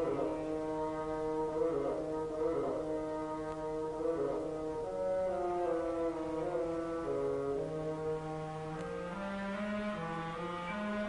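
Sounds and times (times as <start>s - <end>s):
orchestral wind instruments chord: 0.0s - 11.0s.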